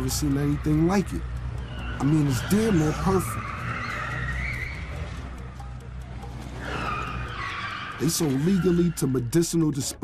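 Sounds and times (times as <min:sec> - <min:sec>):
car tyres squealing: 0:00.0 - 0:10.0.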